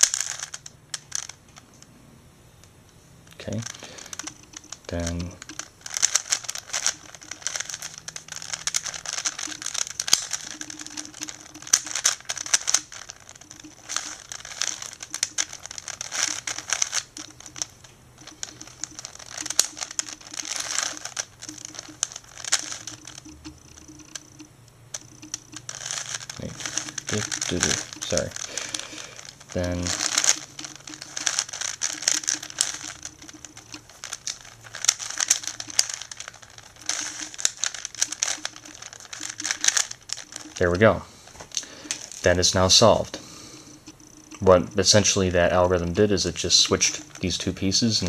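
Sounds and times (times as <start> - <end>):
puzzle cube clicking and scraping: 0.0 - 1.8, 3.3 - 48.0.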